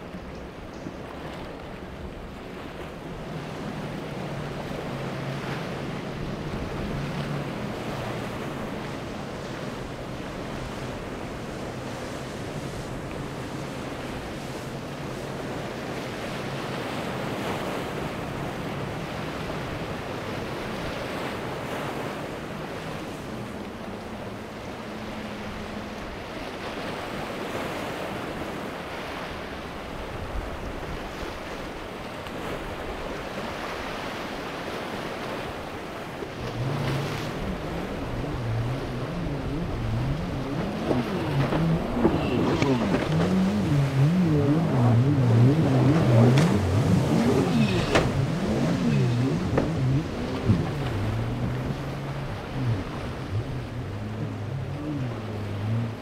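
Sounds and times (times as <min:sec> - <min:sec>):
outboard motors running: 0:00.0 - 0:56.0
waves washing: 0:00.0 - 0:56.0.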